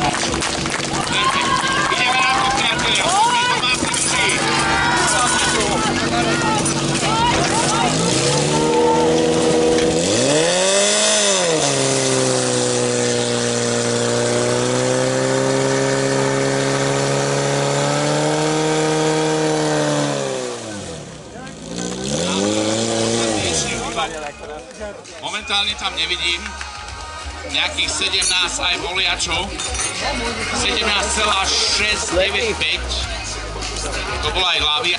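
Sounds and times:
pump engine revving: 0.0 - 24.2.

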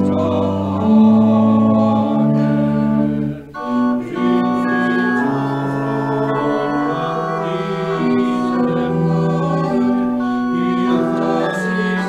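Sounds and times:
pipe organ playing hymn: 0.0 - 12.0
voices singing: 0.0 - 12.0.

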